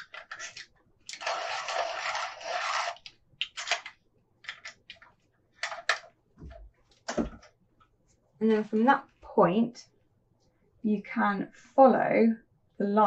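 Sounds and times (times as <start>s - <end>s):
pencil being sharpened: 0.0s - 3.7s.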